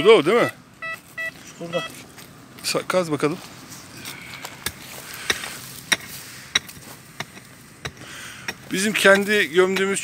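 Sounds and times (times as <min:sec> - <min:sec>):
digging tool chopping into dry soil: 0:04.4 - 0:10.0.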